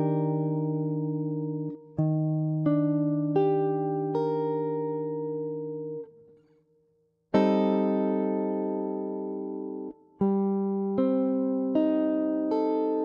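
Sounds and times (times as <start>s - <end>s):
clean electric guitar chord: 0.0s - 6.1s, 7.4s - 13.0s.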